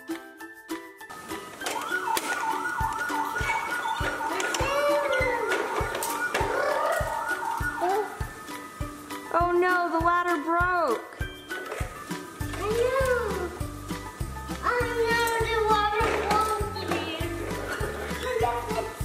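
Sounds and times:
background music with steady beat: 0.0 - 19.0
wavering siren yelp: 1.2 - 9.1.

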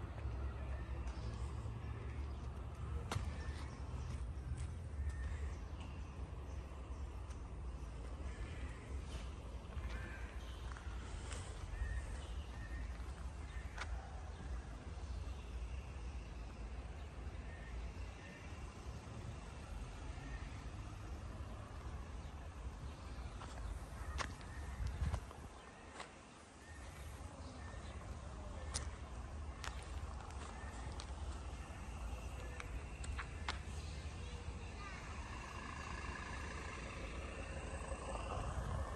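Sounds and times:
birds chirping: 0.0 - 38.9
steady low rumble: 26.6 - 38.9
footsteps on rubble: 29.6 - 31.4.

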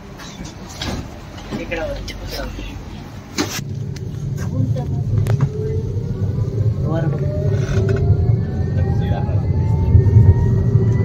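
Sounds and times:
tram low rumble: 0.0 - 11.0
tram motor whine rising: 3.1 - 11.0.

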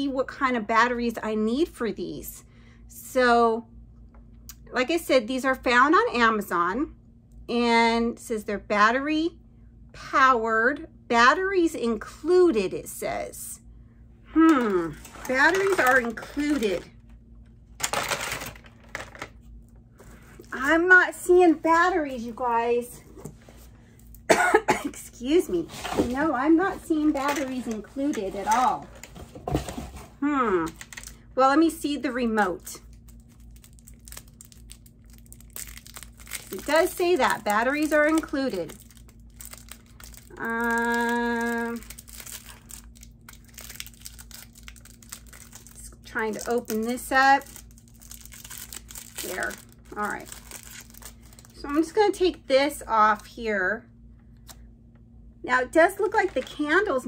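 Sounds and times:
plastic wrapping crinkling: 14.6 - 16.9, 32.6 - 51.9
packaging rustling: 14.8 - 16.9, 17.8 - 19.4, 32.9 - 51.6.

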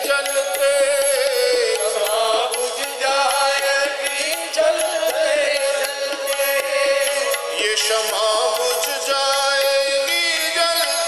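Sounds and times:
man singing: 0.0 - 11.0
sustained harmonium: 0.0 - 11.0
tabla strokes: 0.0 - 11.0.

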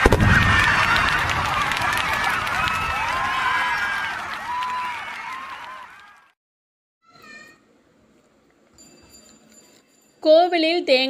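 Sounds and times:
fireworks crackling: 0.0 - 3.2
crowd calling out and cheering: 0.0 - 6.3.

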